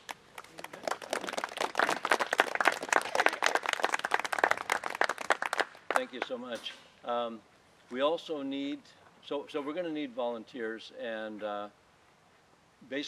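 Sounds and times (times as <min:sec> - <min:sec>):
audience applauding: 0:00.0 - 0:06.3.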